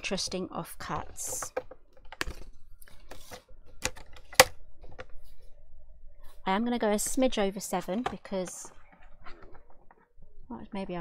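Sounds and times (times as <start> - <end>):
card rustling: 0.9 - 5.4.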